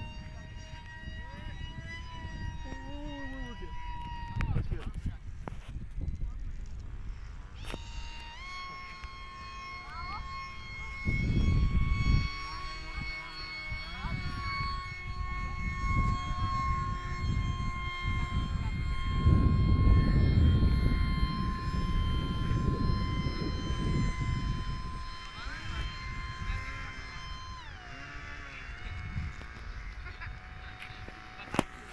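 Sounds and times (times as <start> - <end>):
low rumbling gusts: 0.0 - 31.4
model airplane motors whining: 0.0 - 31.9.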